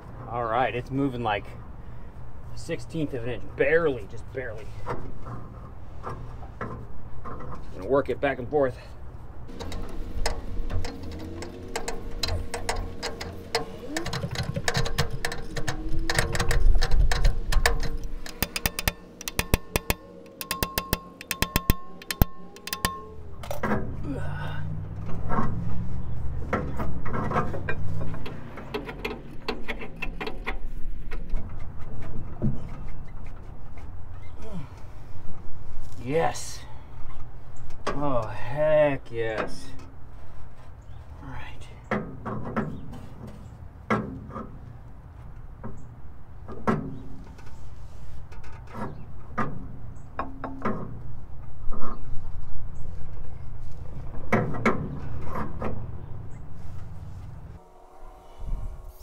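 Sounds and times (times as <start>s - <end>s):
wrench clicking and knocking on metal: 9.5s - 23.8s.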